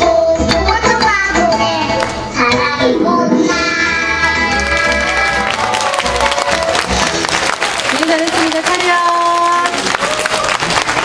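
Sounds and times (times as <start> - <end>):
children singing a song: 0.0 - 4.6.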